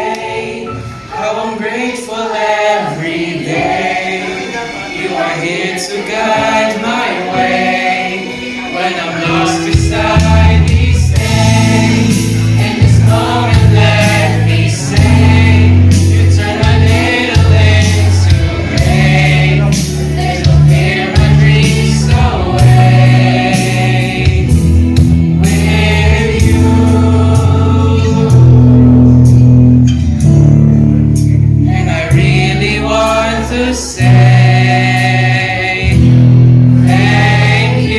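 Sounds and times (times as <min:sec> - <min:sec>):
choir singing gospel song: 0:00.0 - 0:29.4, 0:31.6 - 0:37.9
instrumental accompaniment with beat: 0:02.8 - 0:37.9.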